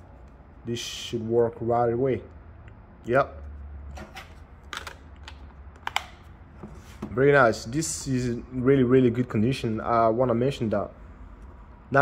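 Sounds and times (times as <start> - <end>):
plastic clicks and taps: 4.7 - 6.2.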